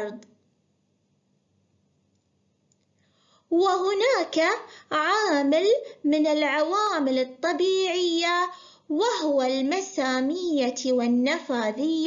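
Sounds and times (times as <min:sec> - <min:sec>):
very faint clicks: 0:02.1 - 0:03.1.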